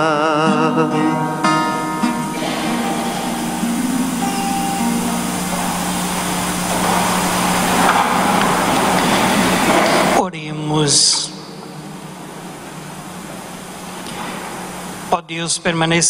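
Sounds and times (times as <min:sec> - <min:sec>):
voices singing a hymn: 0:00.0 - 0:10.2
acoustic guitar: 0:00.0 - 0:15.2
steady low held note: 0:01.4 - 0:10.3
hiss: 0:01.5 - 0:10.2.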